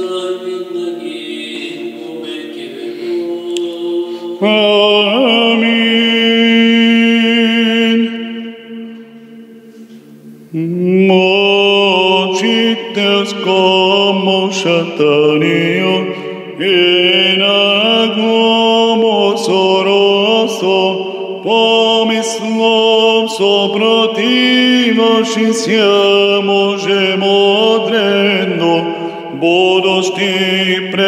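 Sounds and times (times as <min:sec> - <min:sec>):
man chanting: 0:00.0 - 0:08.5, 0:10.2 - 0:31.0.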